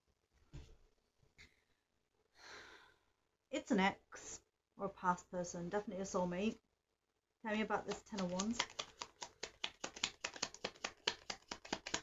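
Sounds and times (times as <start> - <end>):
cards shuffled by hand: 7.8 - 12.0.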